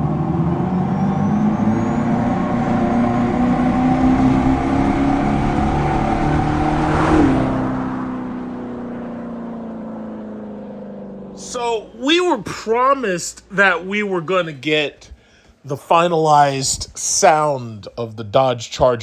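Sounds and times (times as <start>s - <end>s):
electric car synthetic exhaust note: 0.0s - 14.2s.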